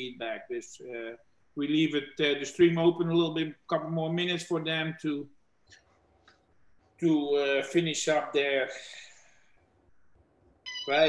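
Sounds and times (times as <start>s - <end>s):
man talking: 0.0s - 5.2s, 7.0s - 9.1s.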